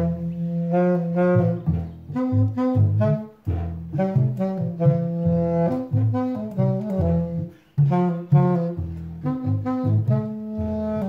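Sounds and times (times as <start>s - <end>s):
plucked washtub bass: 0.0s - 11.0s
saxophone playing jazzy melody: 0.0s - 11.0s.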